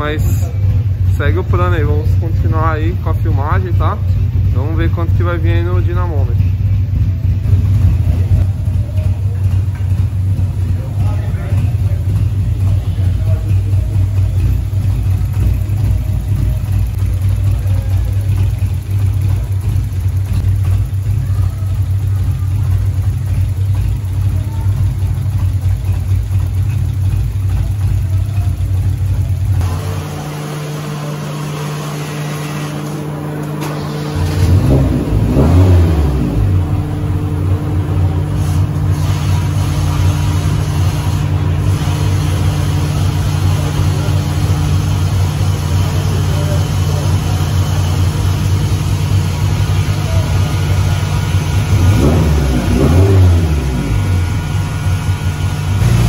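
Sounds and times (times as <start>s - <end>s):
car engine running: 0.0s - 56.0s
engine revving: 7.4s - 56.0s.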